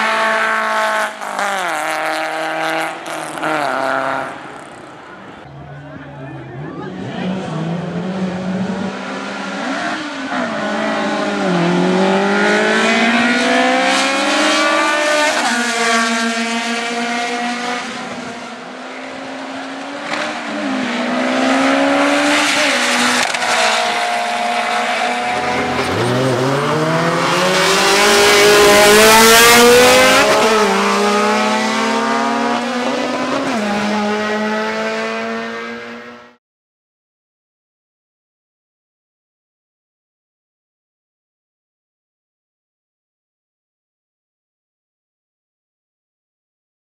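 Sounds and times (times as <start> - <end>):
drag racing cars accelerating: 0.0 - 5.4, 6.3 - 36.4.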